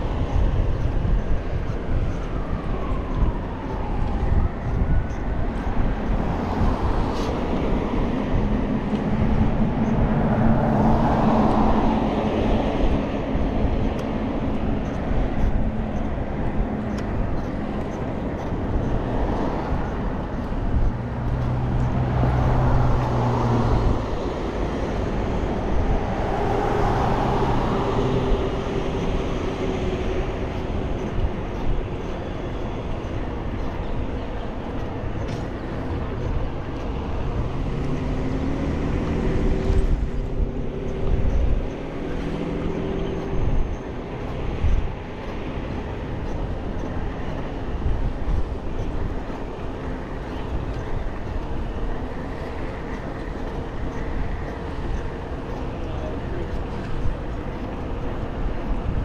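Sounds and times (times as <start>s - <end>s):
road traffic passing: 0.0s - 59.0s
wind and road noise: 0.0s - 59.0s.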